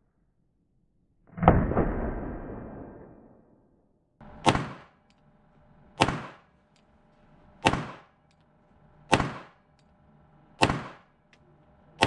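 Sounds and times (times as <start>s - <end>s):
pistol shots echoing indoors: 4.2s - 5.2s, 6.0s - 9.9s, 10.5s - 11.2s.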